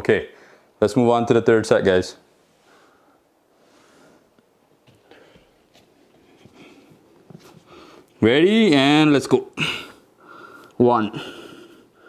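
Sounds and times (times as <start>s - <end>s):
soft rustling on mat: 4.8s - 8.0s.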